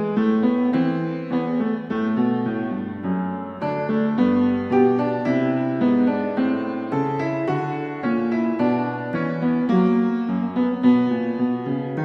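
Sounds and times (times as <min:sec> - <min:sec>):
piano-like keyboard melody: 0:00.0 - 0:12.0.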